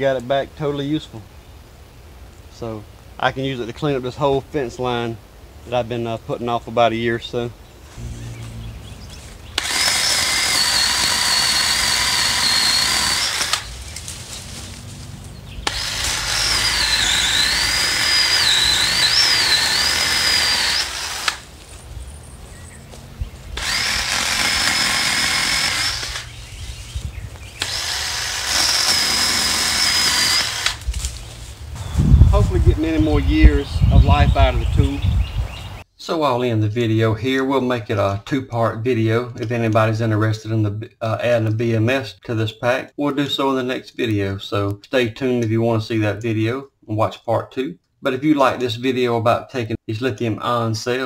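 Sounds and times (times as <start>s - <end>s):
pole saw motor and chain whine: 8.0s - 21.5s, 23.6s - 26.4s, 27.6s - 30.8s.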